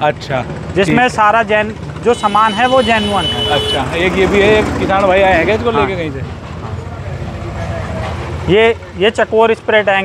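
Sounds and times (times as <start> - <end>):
people talking: 0.0 - 6.3, 7.0 - 10.0.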